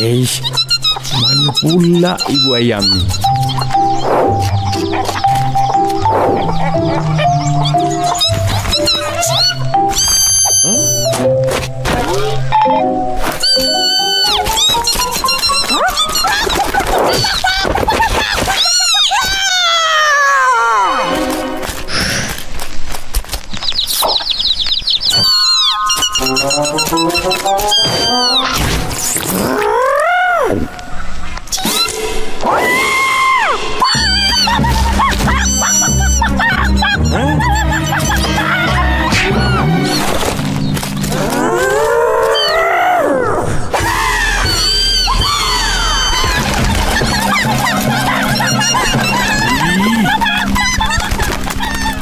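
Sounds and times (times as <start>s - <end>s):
high chick-like peeps: 0.0s - 11.5s, 12.4s - 21.9s, 23.5s - 29.6s, 30.7s - 42.8s, 43.8s - 52.0s
background music: 0.0s - 16.8s, 25.6s - 29.5s, 31.7s - 42.4s, 43.1s - 52.0s
quick pattering steps: 13.2s - 19.6s, 43.8s - 52.0s.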